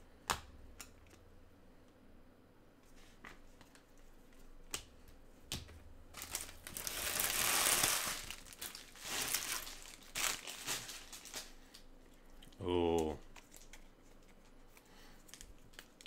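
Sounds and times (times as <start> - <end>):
foil wrappers crinkling: 6.1 - 11.9, 13.2 - 16.0.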